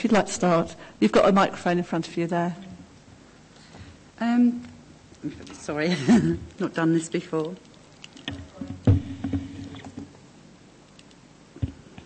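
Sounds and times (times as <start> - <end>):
desk microphone handling noise: 8.2 - 10.2, 11.6 - 12.0
loud thump: 8.7 - 9.6.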